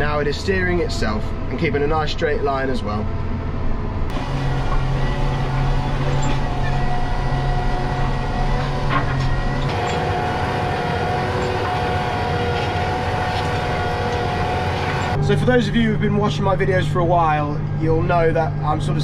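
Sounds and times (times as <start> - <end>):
tractor diesel engine droning: 0.0 - 19.0
subsoiler working the ground: 4.1 - 15.5.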